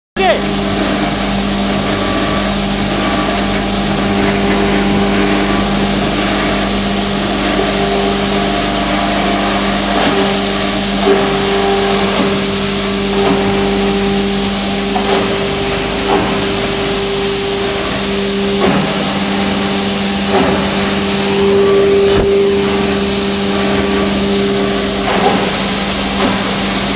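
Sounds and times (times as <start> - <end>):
foam shredder running: 0.2 - 26.9.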